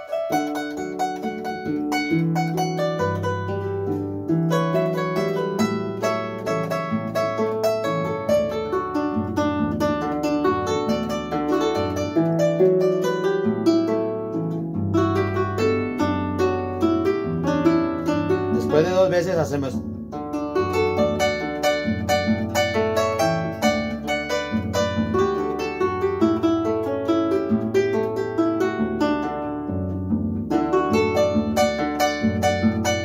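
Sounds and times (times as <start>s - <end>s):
harp plucked melody: 0.0s - 33.0s.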